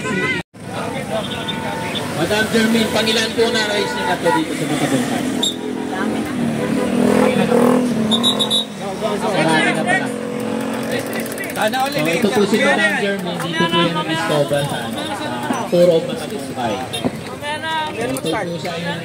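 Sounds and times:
people talking: 0.0s - 19.0s.

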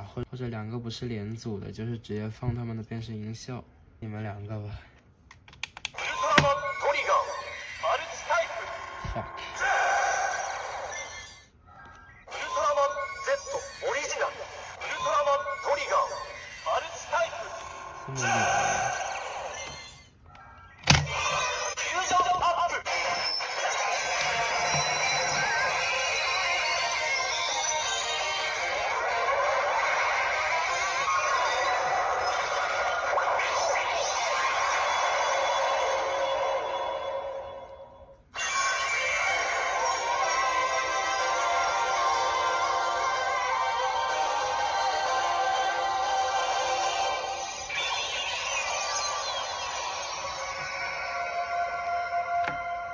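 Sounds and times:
toy recorded voice lines: 5.9s - 36.8s, 38.3s - 52.9s
toy transformation music: 10.5s - 36.3s, 38.4s - 52.9s.

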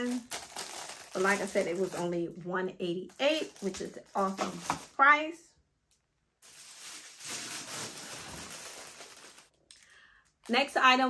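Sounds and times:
packaging rustling and crinkling: 0.0s - 2.2s, 3.1s - 5.0s, 6.4s - 9.5s.

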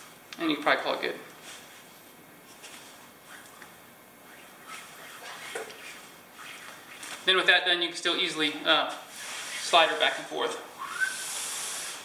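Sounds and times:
cord rustling: 1.4s - 7.5s.

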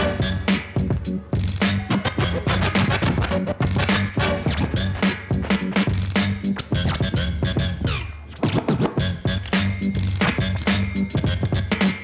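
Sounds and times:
hip-hop beat: 0.0s - 12.0s
turntable scratching: 0.0s - 12.0s.

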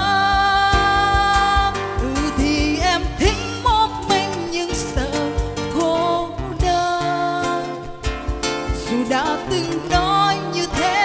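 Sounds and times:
acoustic guitar: 0.0s - 11.0s
cajon beat: 0.0s - 11.0s
woman singing: 0.0s - 11.0s.

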